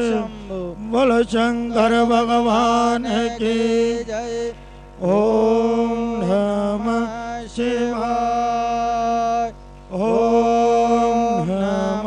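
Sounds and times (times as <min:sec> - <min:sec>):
person chanting in held notes: 0:00.0 - 0:12.0
steady low hum: 0:00.0 - 0:12.0.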